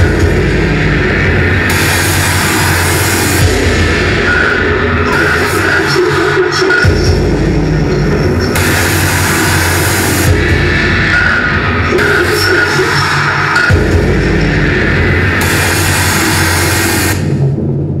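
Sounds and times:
harsh electronic noise: 0:00.0 - 0:18.0
heavy low pulse: 0:00.0 - 0:18.0.

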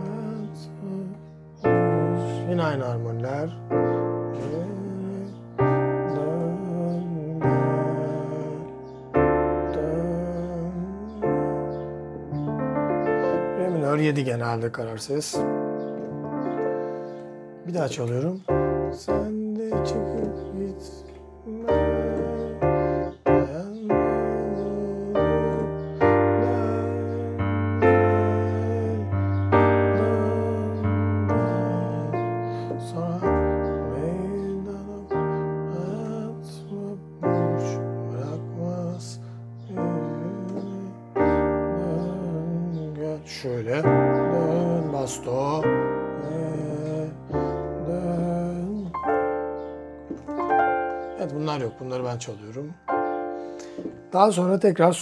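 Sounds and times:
electric piano chords: 0:00.0 - 0:55.0.

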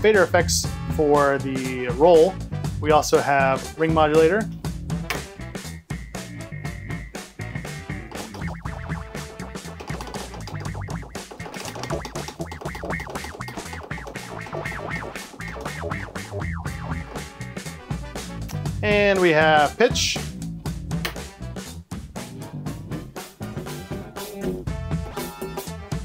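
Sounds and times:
ring modulator effect: 0:05.6 - 0:17.6
dj electronic music: 0:05.6 - 0:18.3
steady high tone: 0:05.9 - 0:09.6.

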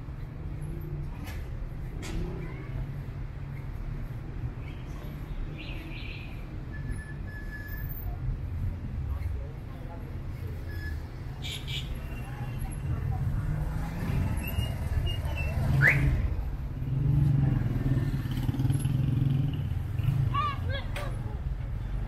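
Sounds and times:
traffic engines rumbling: 0:00.0 - 0:22.0.

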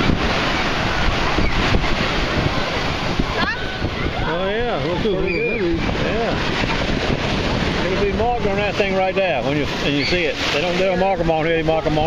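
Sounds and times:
surf washing: 0:00.0 - 0:12.0
wind buffeting microphone: 0:00.0 - 0:12.0.

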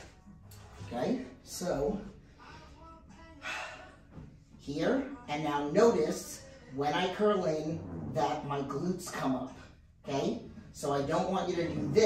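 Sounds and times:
faint breathing: 0:02.0 - 0:04.4.

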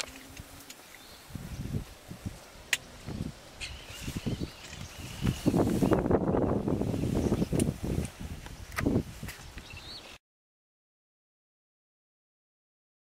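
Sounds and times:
faint high chirping calls: 0:02.5 - 0:07.7, 0:09.4 - 0:10.2.

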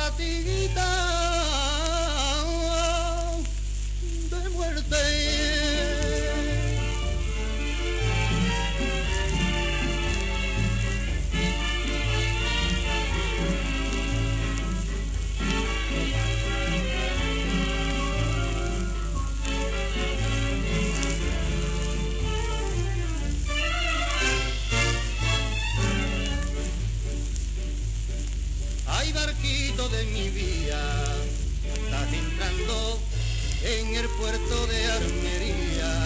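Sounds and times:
old instrumental record music: 0:00.0 - 0:36.0
record crackle and hiss: 0:00.0 - 0:36.0.

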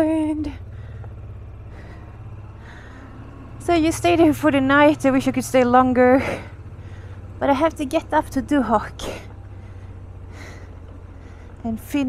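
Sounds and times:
motorcycle engine low drone: 0:00.0 - 0:12.0.

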